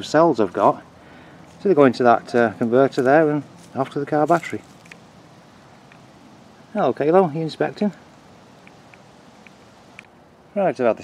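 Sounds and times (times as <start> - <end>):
faint high ticks: 8.6 - 10.2.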